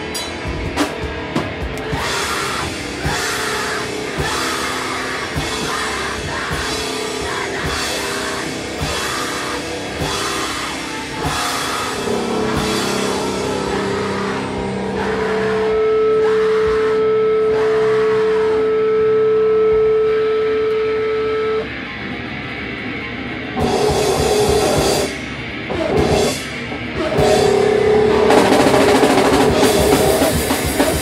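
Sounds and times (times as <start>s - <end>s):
heavy rock band playing: 0.0s - 31.0s.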